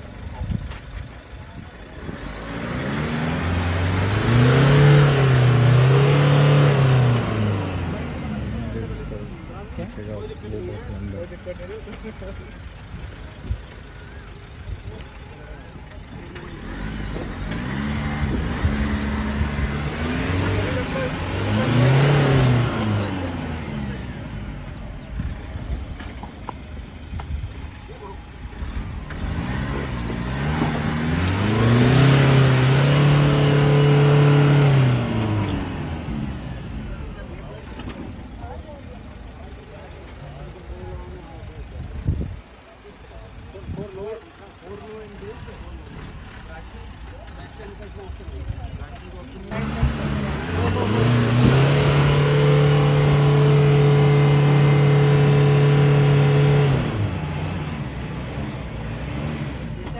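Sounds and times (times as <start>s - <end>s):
pickup engine revving: 1.8s - 13.8s, 14.9s - 42.4s, 43.5s - 59.9s.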